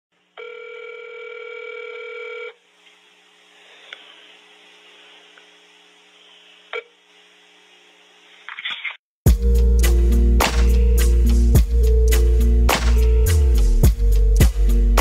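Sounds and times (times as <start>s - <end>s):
telephone line tone: 0.4s - 2.6s.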